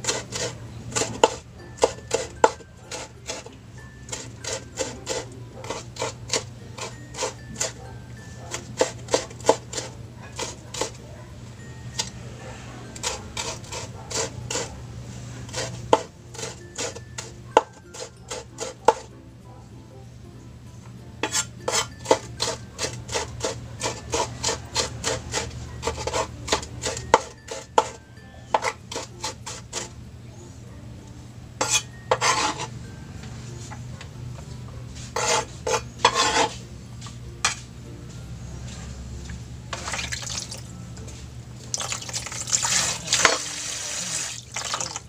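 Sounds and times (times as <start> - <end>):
knife chopping on cutting board: 0.0 - 3.5, 8.5 - 11.0, 15.5 - 17.0, 17.6 - 19.1, 35.2 - 36.5
knife scraping a cutting board: 0.0 - 7.8, 8.4 - 11.0, 13.0 - 14.8, 15.4 - 19.1, 21.2 - 30.0, 31.6 - 32.8, 35.0 - 36.6.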